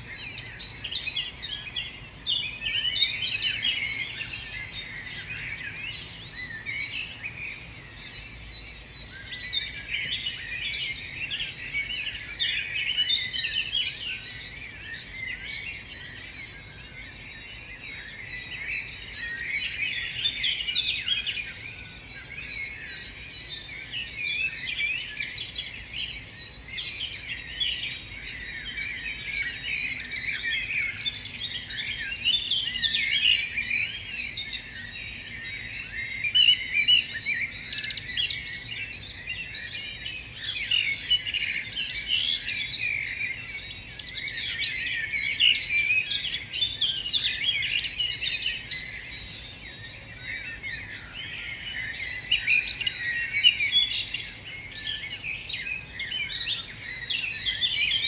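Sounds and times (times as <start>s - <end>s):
songbirds chirping: 0.0s - 58.0s.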